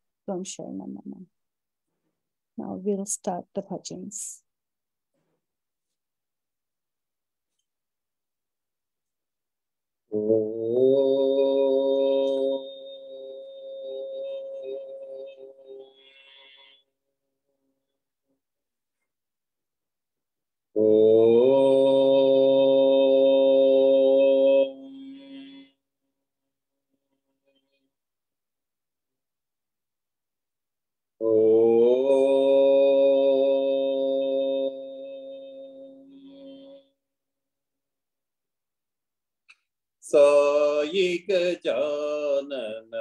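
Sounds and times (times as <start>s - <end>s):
person chanting a mantra: 10.1s - 15.6s, 20.8s - 25.6s, 31.2s - 36.7s, 40.0s - 43.0s.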